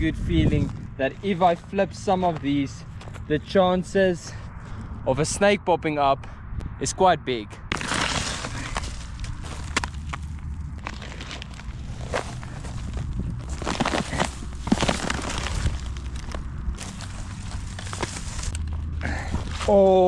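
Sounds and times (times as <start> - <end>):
footsteps crunching on dry grass: 0.2 - 3.5, 7.7 - 19.9
rubber scraping and rustling: 7.7 - 19.8.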